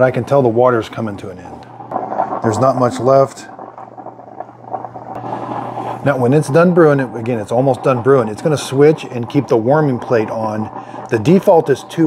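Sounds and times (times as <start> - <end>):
coffee maker brewing hiss: 0.0 - 12.0
low hum: 0.0 - 12.0.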